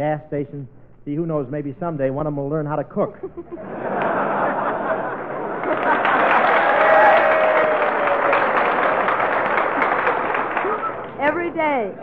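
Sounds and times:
studio audience laughing and applauding: 0:03.3 - 0:11.2.

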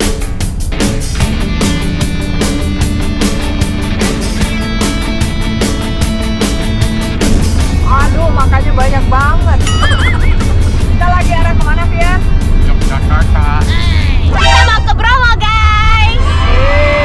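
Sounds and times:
background music with a beat: 0:00.0 - 0:14.1
car driving on highway: 0:00.2 - 0:17.0.

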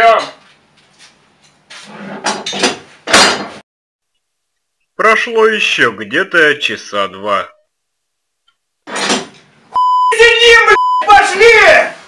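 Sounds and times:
high-pitched censor bleep: 0:09.8 - 0:11.1
loud shout: 0:10.1 - 0:12.0.

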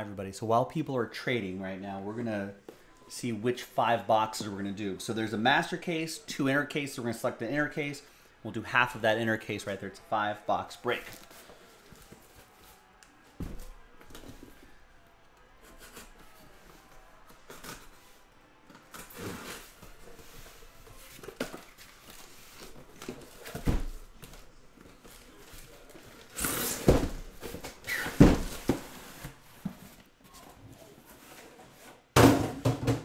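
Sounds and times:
cardboard cases knocking and scuffing: 0:26.8 - 0:29.0.

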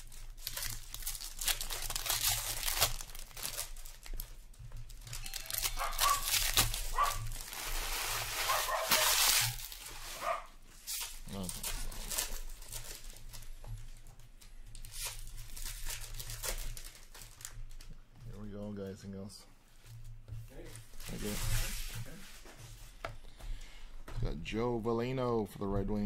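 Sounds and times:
card pack wrappers crinkling and tearing: 0:00.0 - 0:18.0, 0:20.6 - 0:21.9.

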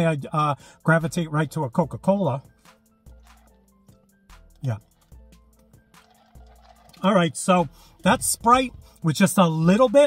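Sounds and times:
quiet background music: 0:00.0 - 0:10.0
sipping through a straw: 0:03.1 - 0:03.8, 0:04.8 - 0:07.1.

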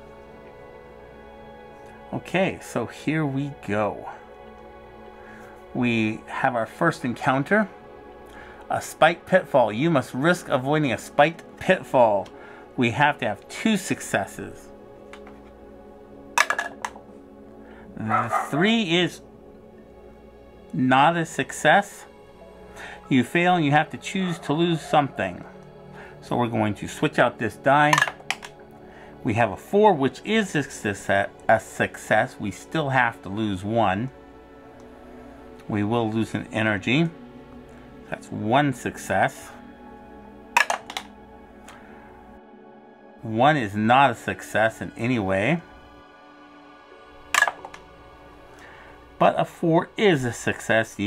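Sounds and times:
soft background music: 0:00.0 - 0:51.0
die clattering in a dice tray: 0:16.4 - 0:17.0, 0:27.9 - 0:28.5, 0:40.6 - 0:41.1, 0:47.4 - 0:47.8.

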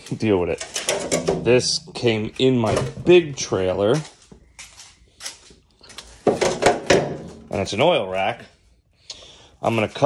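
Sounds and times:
handling knocks and rustles: 0:00.0 - 0:07.6.

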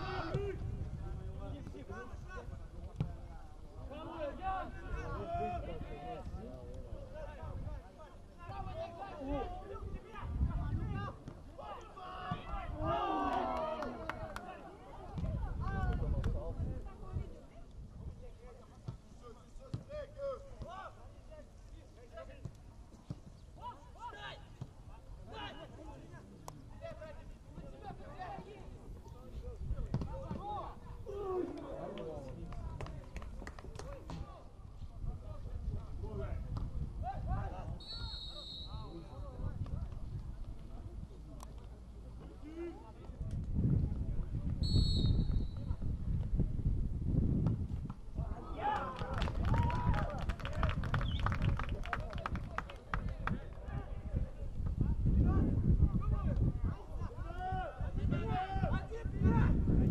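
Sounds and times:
footballers shouting: 0:00.0 - 0:00.6, 0:08.4 - 0:16.0, 0:48.2 - 0:50.3
players shouting: 0:11.0 - 0:15.2
ball being kicked thuds: 0:29.9 - 0:30.4.

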